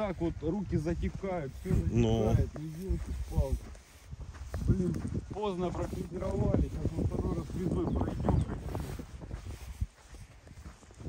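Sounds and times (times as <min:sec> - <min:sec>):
man speaking: 0:00.0 - 0:03.6.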